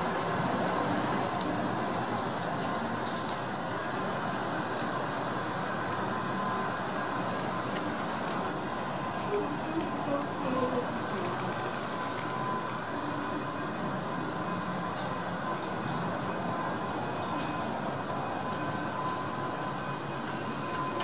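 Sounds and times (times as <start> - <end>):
funicular car rumble and whine: 0.0 - 21.0.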